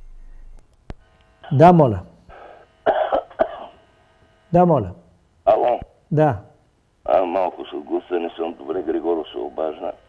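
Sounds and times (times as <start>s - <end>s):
person coughing over telephone: 2.8s - 3.8s.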